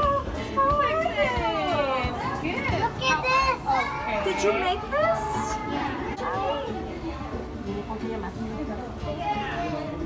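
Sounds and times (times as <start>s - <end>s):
young children talking and calling: 0.0s - 10.0s.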